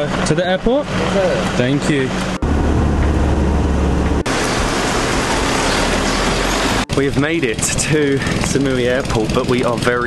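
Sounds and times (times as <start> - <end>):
road and wind noise: 0.0 - 10.0
van engine drone: 0.0 - 10.0.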